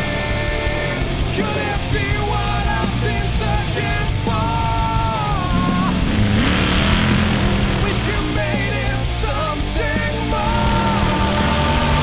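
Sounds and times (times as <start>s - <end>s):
racing engine revving hard: 4.2s - 9.1s, 10.0s - 12.0s.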